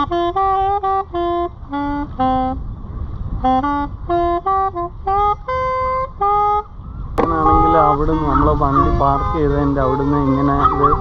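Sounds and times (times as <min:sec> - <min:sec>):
solo melody instrument: 0:00.0 - 0:11.0.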